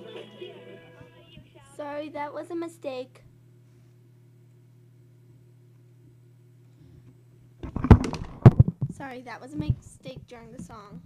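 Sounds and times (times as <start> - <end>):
faint low hum: 0.0 - 11.0
close knocks and crackles: 7.6 - 11.0.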